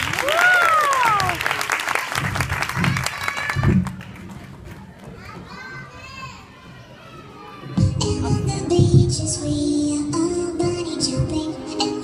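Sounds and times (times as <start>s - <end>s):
audience applause: 0.0s - 5.1s
children chattering: 4.8s - 7.8s.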